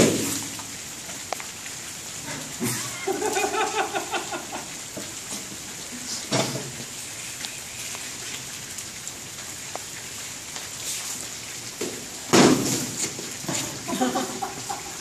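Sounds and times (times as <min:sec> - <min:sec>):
rain on a gazebo roof: 0:00.0 - 0:15.0.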